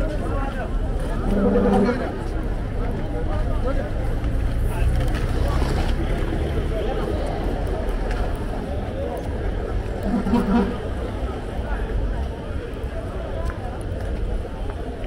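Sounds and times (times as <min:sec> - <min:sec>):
passers-by talking: 0:00.0 - 0:15.0
traffic rumble: 0:00.0 - 0:15.0.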